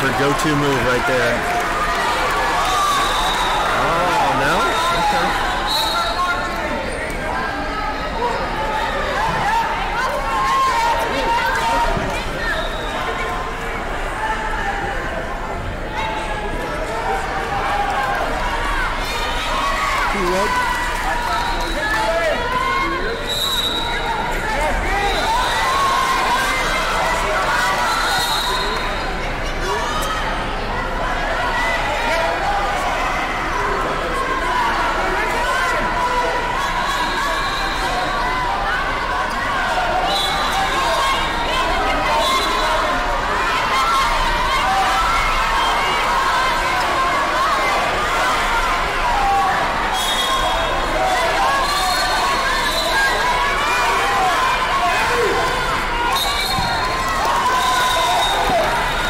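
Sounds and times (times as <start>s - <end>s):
people talking and shouting: 0.0s - 59.0s.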